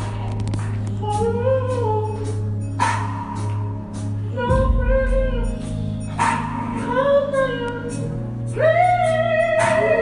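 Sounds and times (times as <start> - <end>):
drums: 0.0 - 10.0
keyboard: 0.0 - 10.0.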